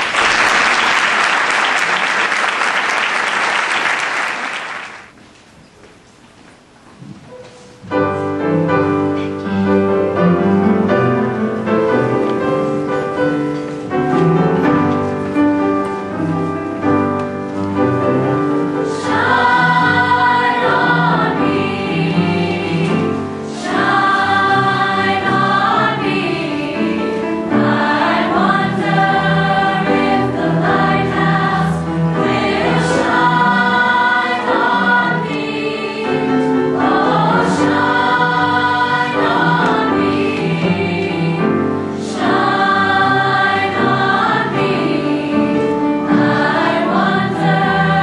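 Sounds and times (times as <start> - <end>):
youth choir singing: 18.1 - 48.0.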